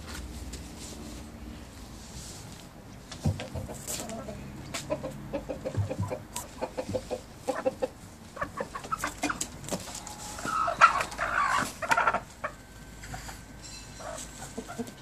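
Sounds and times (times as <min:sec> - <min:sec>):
chickens clucking: 0:03.2 - 0:15.0.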